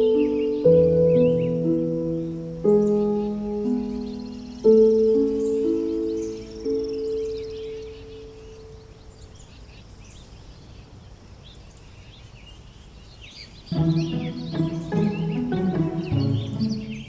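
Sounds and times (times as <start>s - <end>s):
music: 0.0s - 8.0s, 13.7s - 17.0s
held musical chord: 0.0s - 8.8s, 13.7s - 17.0s
birds chirping: 0.0s - 17.0s
meadow ambience hiss: 0.0s - 17.0s.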